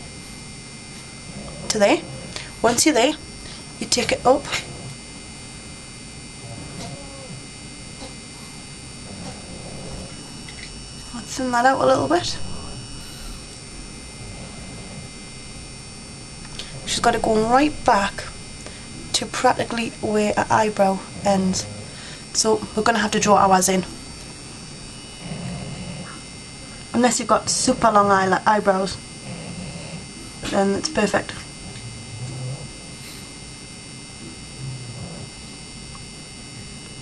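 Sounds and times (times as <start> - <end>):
background hiss: 0.0 - 34.9
high-pitched electronic whine: 0.0 - 37.0
low electrical hum: 0.0 - 37.0.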